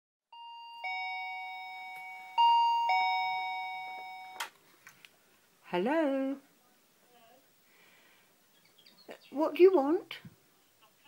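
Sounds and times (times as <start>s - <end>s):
intercom ding-dong chime: 0.4s - 4.4s.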